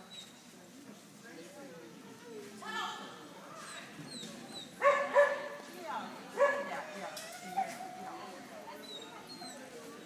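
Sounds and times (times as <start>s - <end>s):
dog barking: 4.8s - 5.6s, 6.4s - 6.8s.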